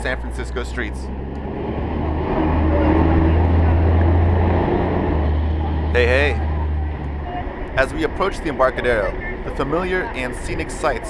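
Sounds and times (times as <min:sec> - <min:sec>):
low engine rumble: 0:00.0 - 0:11.0
street traffic: 0:00.0 - 0:11.0.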